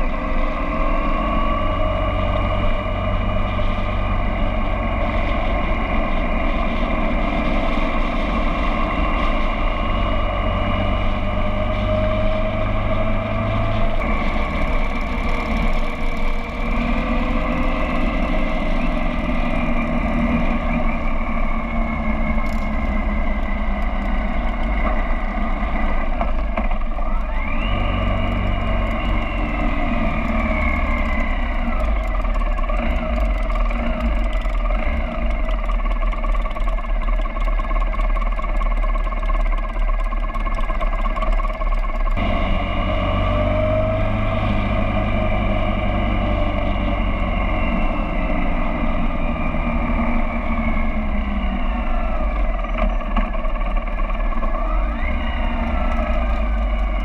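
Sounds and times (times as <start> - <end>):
motorcycle engines running: 0.0 - 57.0.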